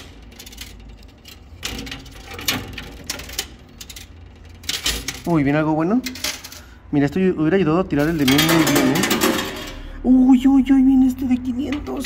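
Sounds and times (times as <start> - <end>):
low steady hum: 0.0 - 12.0
coins clinking: 8.0 - 9.9.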